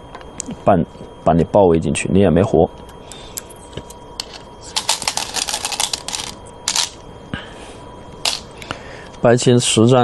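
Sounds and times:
go stones clicking: 0:04.2 - 0:07.0, 0:08.2 - 0:08.5.

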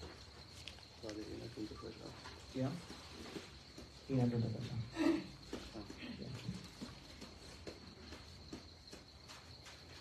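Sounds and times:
soft ticks and rustles: 0:00.0 - 0:10.0.

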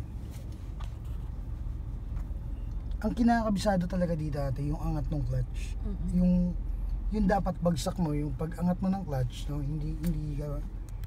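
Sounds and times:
car engine rumbling: 0:00.0 - 0:11.0.

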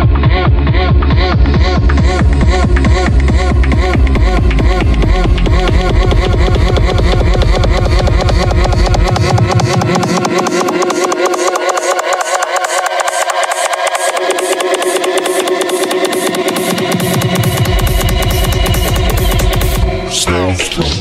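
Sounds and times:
breakbeat dj mix: 0:00.0 - 0:21.0
buzzy synth rising in pitch: 0:01.7 - 0:21.0.

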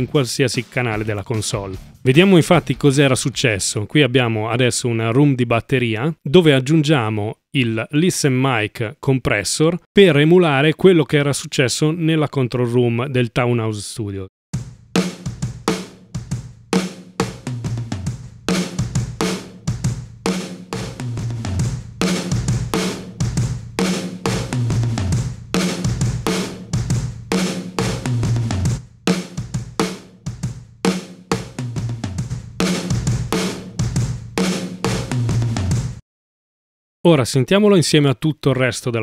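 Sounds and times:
drum kit playing beat: 0:00.0 - 0:03.0, 0:14.5 - 0:36.0.

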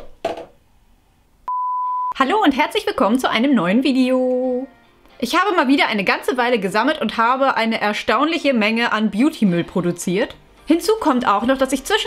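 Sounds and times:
test-tone beep: 0:01.5 - 0:02.2.

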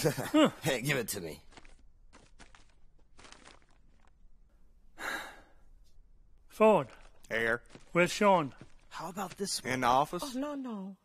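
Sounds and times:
person sighing heavily: 0:05.0 - 0:05.6.

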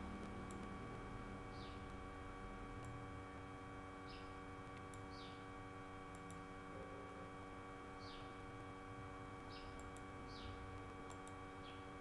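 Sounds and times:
electrical mains hum: 0:00.0 - 0:12.0
light clicks: 0:11.0 - 0:11.4.

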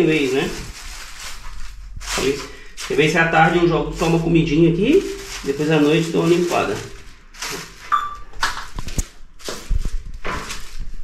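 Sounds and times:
plastic sheeting rustling: 0:00.0 - 0:11.0.

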